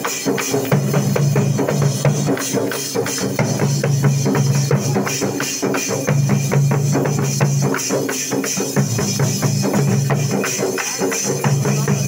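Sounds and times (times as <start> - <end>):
large barrel drums beaten: 0.0 - 12.0.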